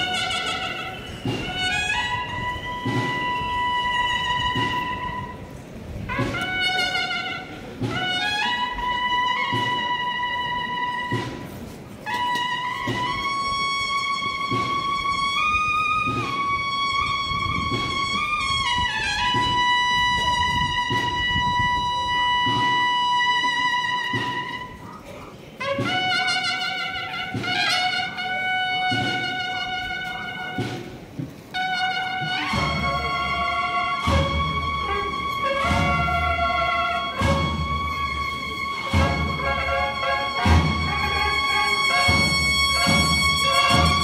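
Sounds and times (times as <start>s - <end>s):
regular drum beat: 0.0s - 12.0s, 25.5s - 44.0s
bugles holding long notes: 0.0s - 24.8s, 25.6s - 44.0s.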